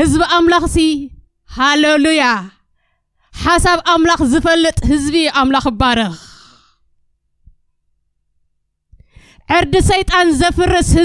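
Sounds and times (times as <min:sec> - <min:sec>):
woman speaking: 0:00.0 - 0:02.6, 0:03.4 - 0:06.4, 0:09.5 - 0:11.0.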